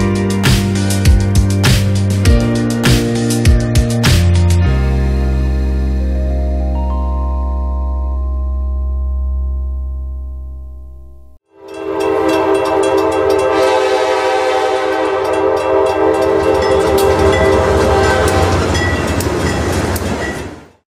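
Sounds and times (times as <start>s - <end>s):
passing train rumble and clicking: 11.6s - 20.8s
locomotive air horn: 11.7s - 19.2s.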